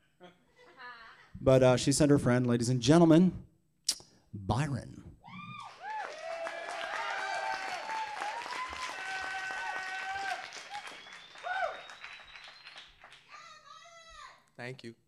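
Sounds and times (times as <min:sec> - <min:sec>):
audience applauding and cheering: 0:05.2 - 0:13.6.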